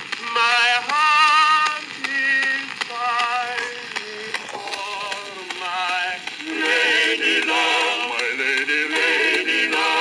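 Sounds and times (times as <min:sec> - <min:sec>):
record surface noise clicks: 0:00.0 - 0:10.0
male vocal quartet singing: 0:00.2 - 0:10.0.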